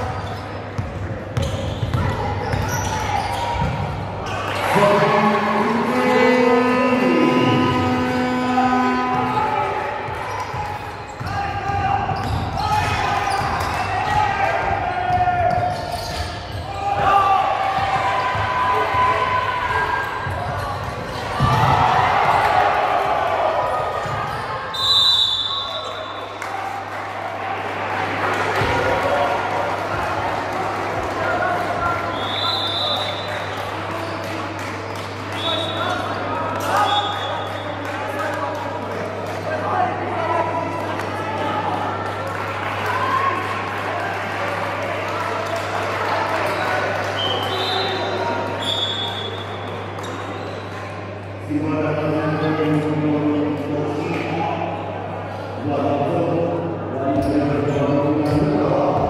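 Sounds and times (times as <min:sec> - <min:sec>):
people calling out: 0:04.6 - 0:09.8.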